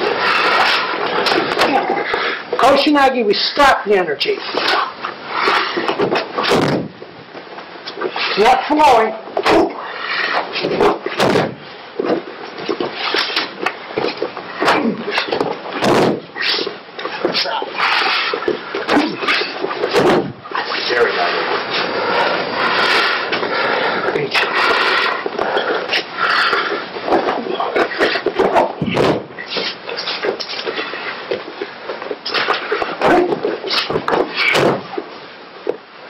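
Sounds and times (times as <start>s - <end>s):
sharp knocks: 6.0s - 7.0s, 10.6s - 12.2s, 14.0s - 16.3s, 18.9s - 20.4s, 28.2s - 29.3s, 33.0s - 35.0s.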